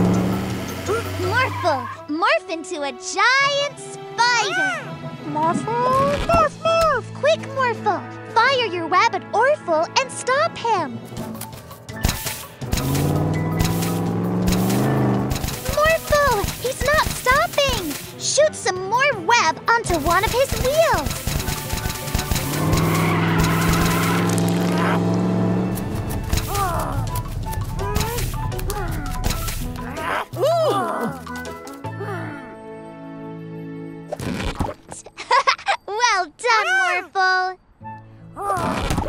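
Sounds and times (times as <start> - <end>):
cartoon music: 26.3 - 32.4.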